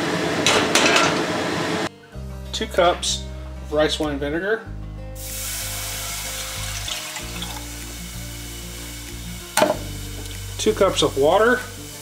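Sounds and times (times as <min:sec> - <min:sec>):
background music: 0:01.9 - 0:12.0
vinegar hissing in hot pan: 0:05.2 - 0:12.0.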